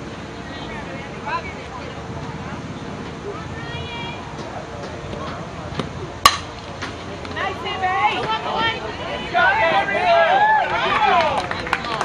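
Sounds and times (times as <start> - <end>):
bat cracking a ball: 5.8 - 7.0
spectators shouting: 7.8 - 11.4.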